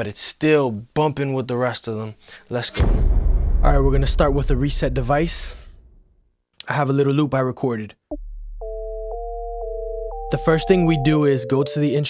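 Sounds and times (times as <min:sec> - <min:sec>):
synth two-note chords: 0:08.1 - 0:12.0.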